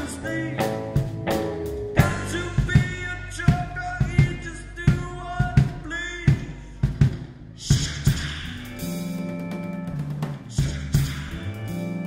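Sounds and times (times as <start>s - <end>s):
guitar chords: 0.0s - 5.3s, 8.2s - 12.0s
keyboard chords: 0.0s - 5.8s, 8.1s - 12.0s
bass drum and snare hits: 0.8s - 12.0s.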